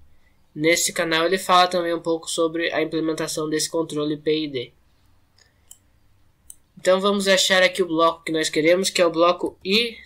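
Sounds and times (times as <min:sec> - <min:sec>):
faint computer mouse clicks: 0:05.0 - 0:06.7.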